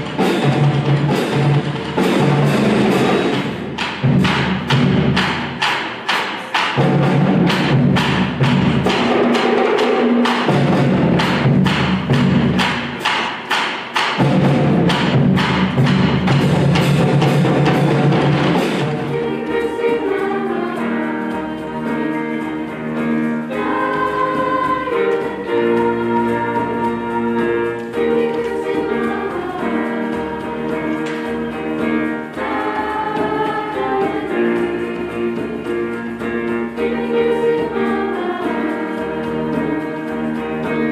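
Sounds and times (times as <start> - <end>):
concert band playing: 0.0 - 40.9
sharp percussion hits: 0.0 - 40.9
choir singing held chords: 14.4 - 40.9.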